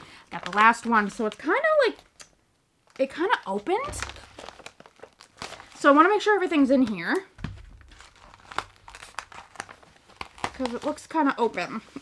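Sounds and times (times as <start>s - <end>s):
packaging crinkling: 0.1s - 6.0s, 7.4s - 12.0s.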